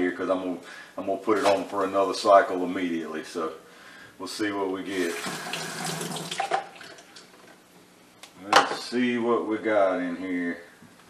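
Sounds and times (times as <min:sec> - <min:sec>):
water splashing in sink: 0:05.0 - 0:07.3.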